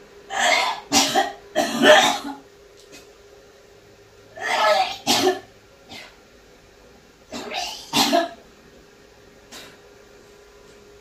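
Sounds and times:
woman coughing: 0.3s - 2.4s, 4.4s - 6.2s, 7.3s - 8.4s.

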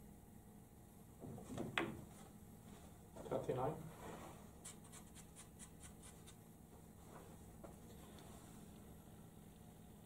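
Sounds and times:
chalk scratching cue tip: 4.6s - 6.4s.

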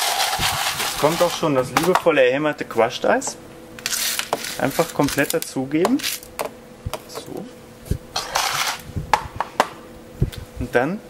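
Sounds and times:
utensils scraping on steel counter: 0.0s - 2.0s, 3.8s - 5.4s, 6.0s - 6.3s, 8.2s - 8.9s.

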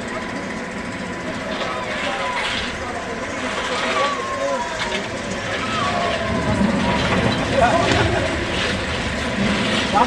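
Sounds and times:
roller coaster rumbling on track: 0.0s - 10.0s
voices: 0.0s - 10.0s.

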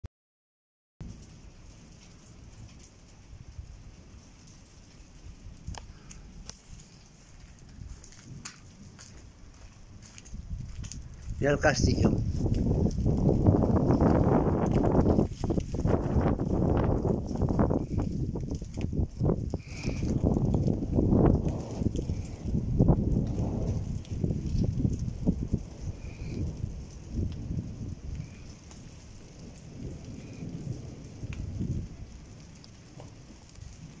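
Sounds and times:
thunder rumbling: 1.0s - 34.0s.

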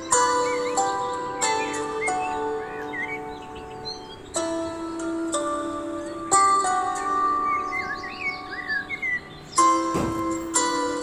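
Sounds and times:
bird chirps gliding: 0.0s - 11.0s
held music chord: 0.0s - 11.0s.

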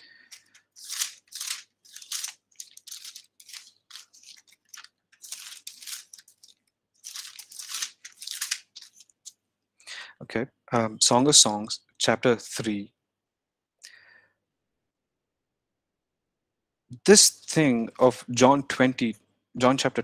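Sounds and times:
pages rustling: 0.0s - 9.4s.

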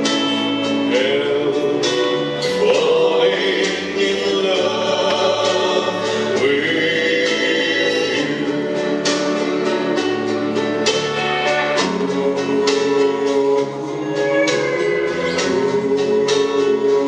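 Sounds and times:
man singing into a microphone: 0.0s - 9.3s, 11.8s - 17.0s
instrumental accompaniment: 0.0s - 17.0s.

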